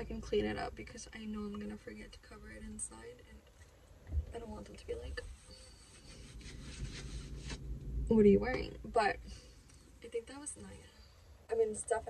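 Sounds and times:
hand rubbing cotton shirt: 5.2s - 7.7s.

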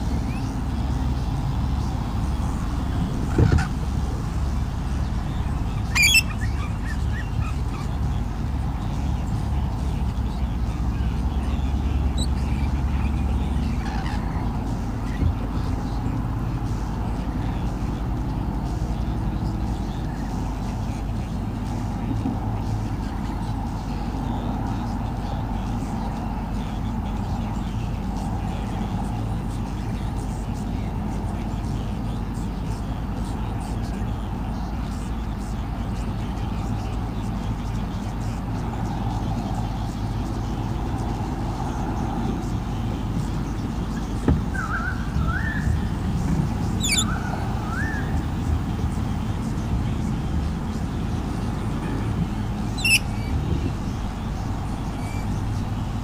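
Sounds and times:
traffic rumble: 0.0s - 56.0s
short rising chirps: 5.9s - 6.5s.

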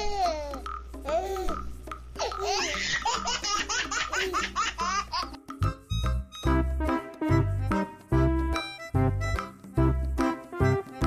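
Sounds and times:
baby laughing: 0.0s - 5.4s.

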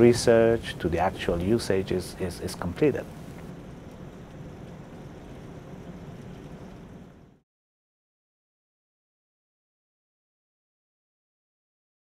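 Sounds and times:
water bubbling in a tank: 0.0s - 7.4s.

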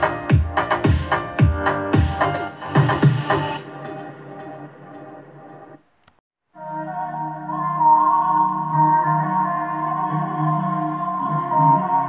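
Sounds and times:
pop song through portable speaker: 0.0s - 4.5s, 6.6s - 12.0s.

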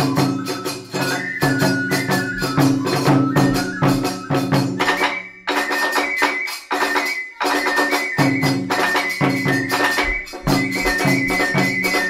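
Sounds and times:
hand cymbals striking: 0.0s - 12.0s
high held flute line: 0.0s - 12.0s
small drum rhythm: 0.0s - 12.0s
large barrel drum strokes: 9.5s - 12.0s.

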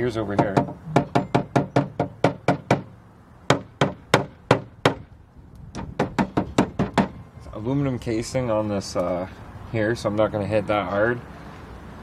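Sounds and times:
wooden mallet tapping metal: 0.4s - 2.9s.

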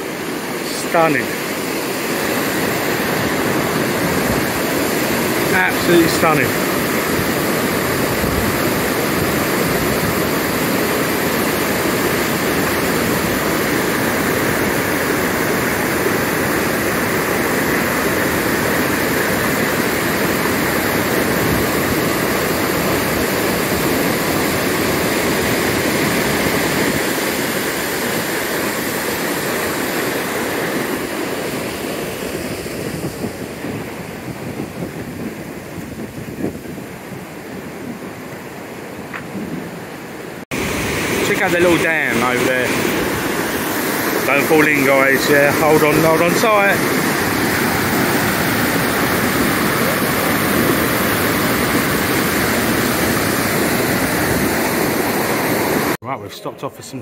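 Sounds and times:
water rushing over rocks: 0.0s - 56.0s.

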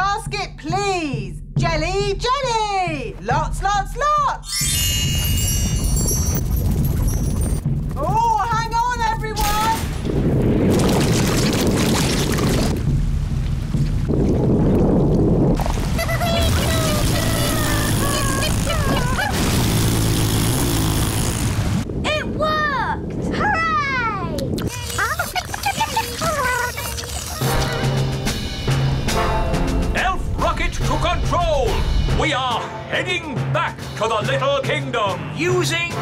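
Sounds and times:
background music: 0.0s - 10.9s, 12.4s - 20.9s, 26.3s - 36.0s
loud rushing gush: 10.4s - 12.8s, 15.5s - 21.9s.

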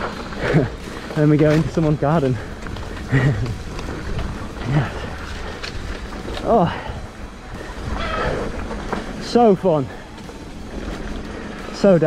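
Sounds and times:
bike tyre and wind noise: 0.0s - 12.0s.

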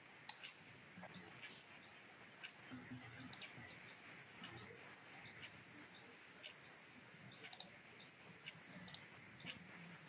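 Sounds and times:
faint irregular clicks: 0.2s - 10.0s.

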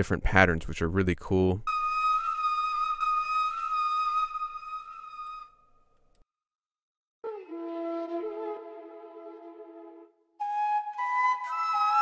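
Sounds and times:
flute holding long note: 1.7s - 5.6s, 7.2s - 12.0s.

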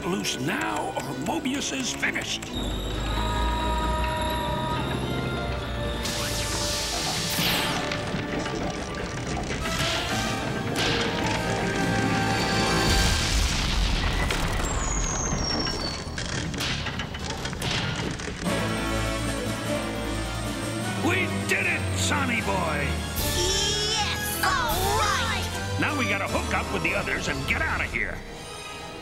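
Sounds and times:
dramatic music: 0.0s - 29.0s
explosion booms: 12.8s - 15.8s.

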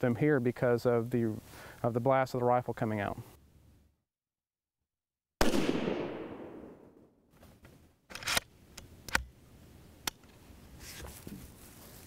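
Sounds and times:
rifle shot: 5.4s - 7.1s.

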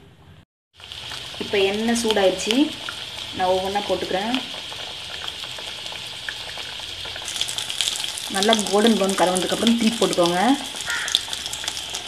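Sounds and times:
hot oil sizzling and bubbling: 0.7s - 12.0s.

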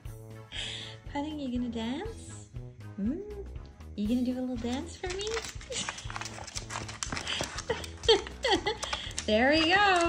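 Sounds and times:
cat claws tapping on wooden floor: 4.6s - 10.0s.

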